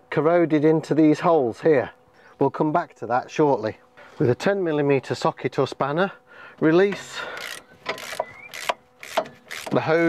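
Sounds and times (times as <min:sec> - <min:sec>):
ratchet clicking: 0:07.4 - 0:10.0.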